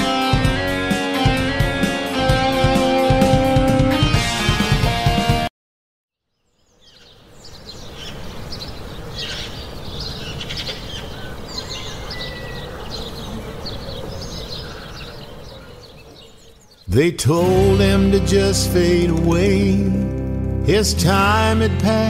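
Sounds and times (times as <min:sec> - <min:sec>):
small birds chirping: 0:06.2 - 0:17.2
outdoor background hiss: 0:06.3 - 0:16.9.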